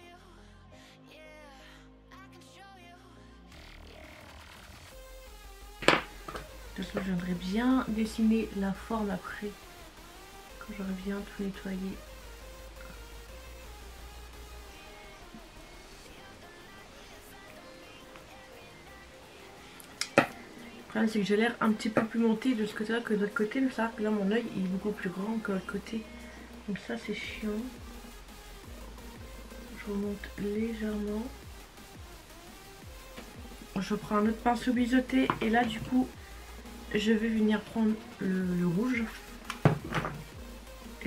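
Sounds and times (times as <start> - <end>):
faint background music: 0.0 - 41.0
makeup items knocking and clicking: 5.8 - 7.2, 35.3 - 36.0, 39.5 - 40.3
woman speaking: 6.7 - 9.6, 10.6 - 12.0, 20.1 - 27.8, 29.6 - 31.4, 33.7 - 36.3, 36.9 - 39.3.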